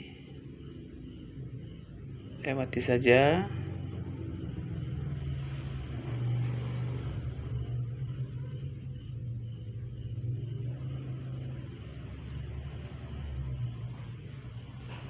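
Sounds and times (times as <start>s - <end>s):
low mechanical hum: 0.0s - 15.0s.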